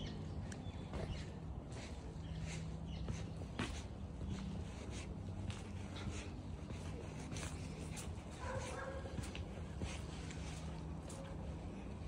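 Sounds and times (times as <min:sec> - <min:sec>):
footsteps on paved path: 0:00.0 - 0:12.0.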